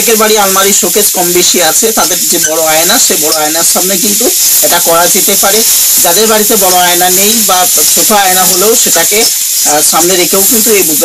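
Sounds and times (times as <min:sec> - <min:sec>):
loud steady hiss: 0:00.0 - 0:11.0
person talking: 0:00.0 - 0:11.0.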